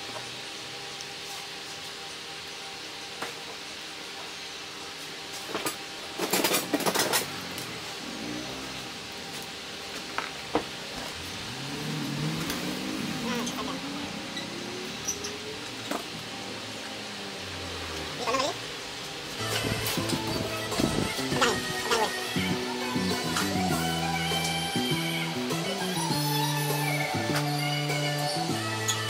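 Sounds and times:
background engine rising in pitch: 7.2 - 9.2, 11.0 - 21.8.

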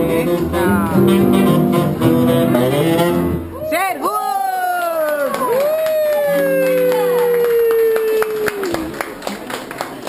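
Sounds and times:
jazz band playing: 0.0 - 3.5
audience clapping: 4.2 - 10.0.

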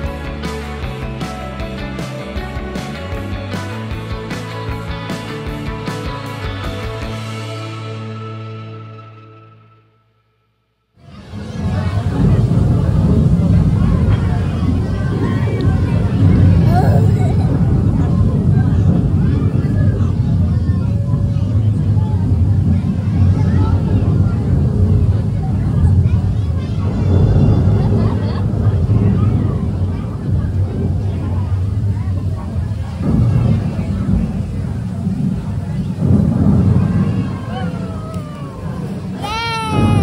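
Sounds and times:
low rumble: 11.0 - 40.0
restaurant chatter: 11.0 - 40.0.

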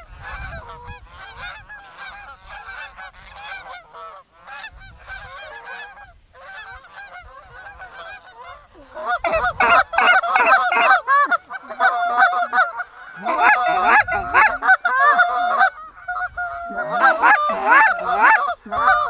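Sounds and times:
geese honking: 0.0 - 19.0.

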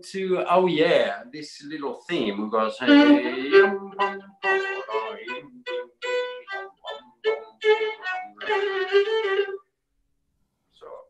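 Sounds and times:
solo violin folk melody: 2.4 - 9.8.

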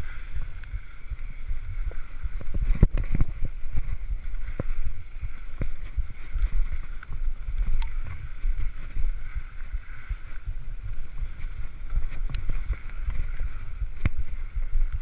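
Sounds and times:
bike tyres rolling on dirt: 0.0 - 15.0
wind buffeting microphone: 0.0 - 15.0.

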